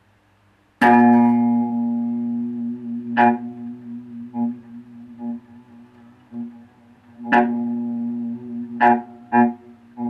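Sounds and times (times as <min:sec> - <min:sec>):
electric bass note plucked: 0:00.8 - 0:10.0.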